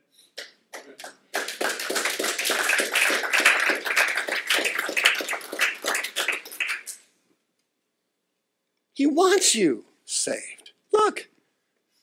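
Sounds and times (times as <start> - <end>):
audience applauding: 0.7 - 7.0.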